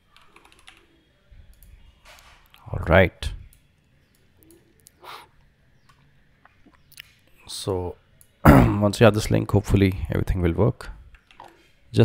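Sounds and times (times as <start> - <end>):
faint clicks: 1.5 - 2.7.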